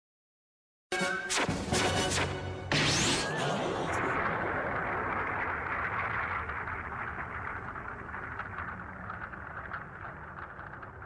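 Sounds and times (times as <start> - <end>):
faint crackles: 4.0 - 11.0.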